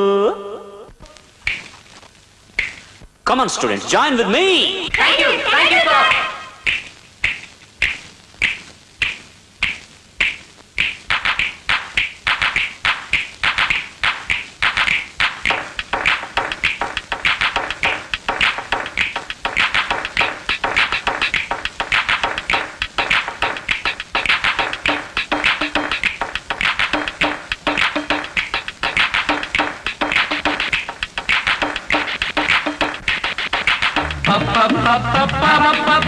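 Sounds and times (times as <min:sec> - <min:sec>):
sharp rhythmic taps: 0:01.0 - 0:03.2, 0:04.9 - 0:36.0.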